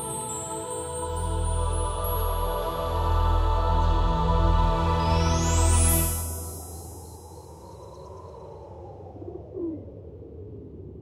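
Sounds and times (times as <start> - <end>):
low sustained drone: 0.0 - 8.4.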